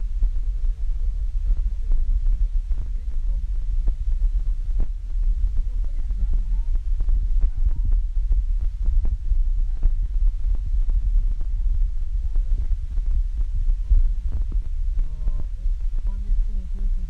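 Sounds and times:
low steady rumble: 0.0 - 17.0
faint voice: 13.8 - 17.0.

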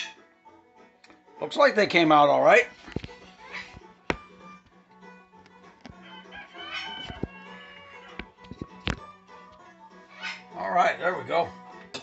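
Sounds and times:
bird-like clucking: 5.9 - 8.3, 10.1 - 10.6.

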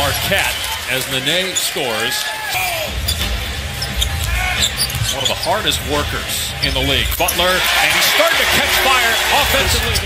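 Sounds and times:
arena crowd rumble: 0.0 - 10.0.

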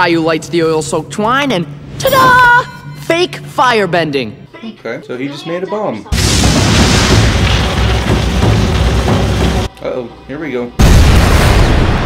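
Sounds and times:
cartoon explosion with deep rumble: 6.1 - 9.6, 10.8 - 12.0.

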